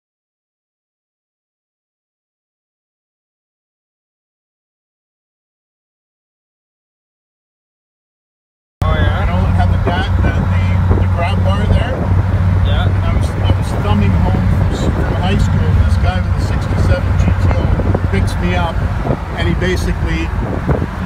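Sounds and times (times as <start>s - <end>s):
car engine running: 8.8s - 21.0s
voices talking: 8.8s - 21.0s.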